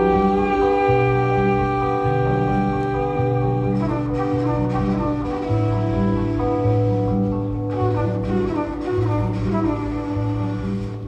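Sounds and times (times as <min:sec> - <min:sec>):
bass line: 0:00.0 - 0:11.0
electric guitar chords: 0:00.0 - 0:11.0
keyboard chords: 0:00.0 - 0:11.0.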